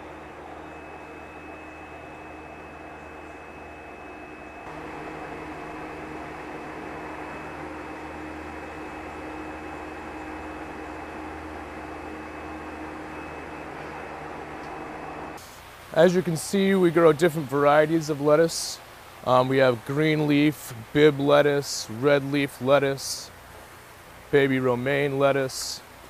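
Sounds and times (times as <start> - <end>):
thin high whine: 0.0 - 18.8
mechanical hum and hiss: 0.0 - 26.0.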